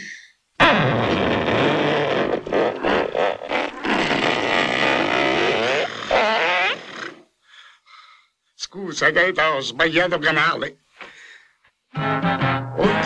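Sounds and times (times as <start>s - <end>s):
man's rasping mouth noise: 0.6s - 7.2s.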